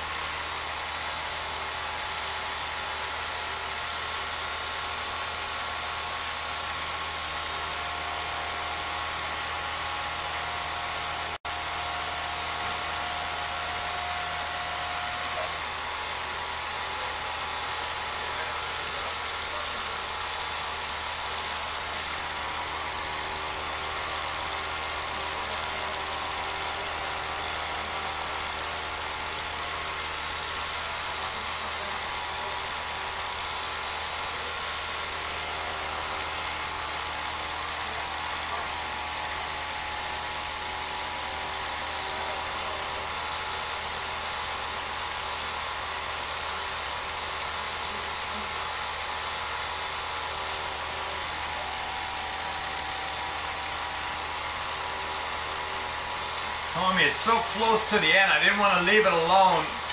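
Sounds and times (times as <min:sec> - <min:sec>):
film projector clatter: 0:00.0 - 0:59.9.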